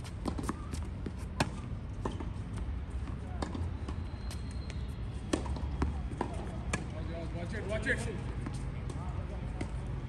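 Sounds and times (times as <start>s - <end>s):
tennis ball struck and bouncing: 0.2s - 2.4s, 5.3s - 6.9s.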